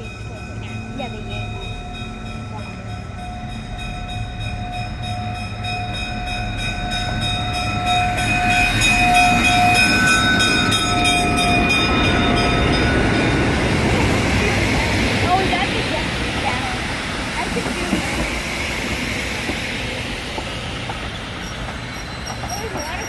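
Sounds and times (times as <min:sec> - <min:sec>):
locomotive bell ringing: 0:00.0 - 0:23.0
train engine and wheel noise: 0:00.0 - 0:23.0.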